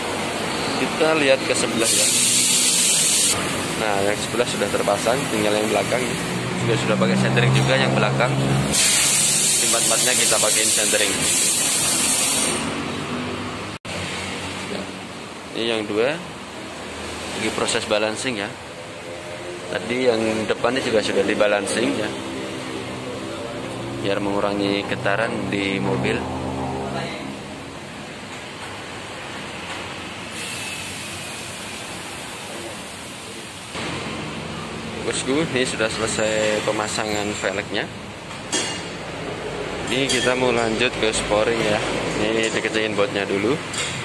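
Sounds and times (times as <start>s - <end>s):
compressed air hissing: 1.8s - 3.4s, 8.7s - 12.7s, 30.3s - 33.4s.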